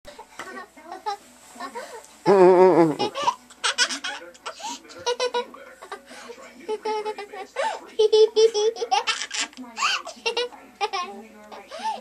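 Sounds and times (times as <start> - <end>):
person laughing: 2.3 - 3.4.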